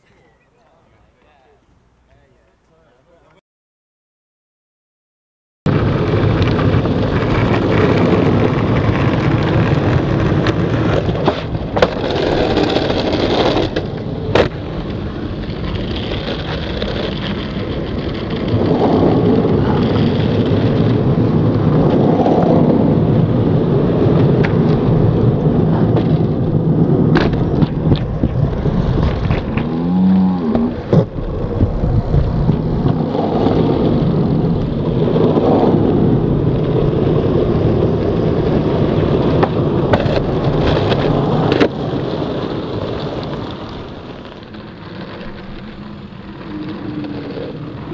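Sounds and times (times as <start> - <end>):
skateboard clacks: 5.7 - 29.8, 30.4 - 47.9
skateboard wheels rumbling on concrete: 5.7 - 47.9.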